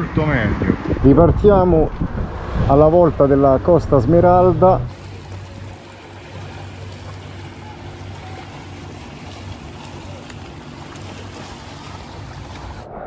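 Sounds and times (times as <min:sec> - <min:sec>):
constant wash of noise: 0:00.0 - 0:13.0
steady engine hum: 0:00.0 - 0:13.0.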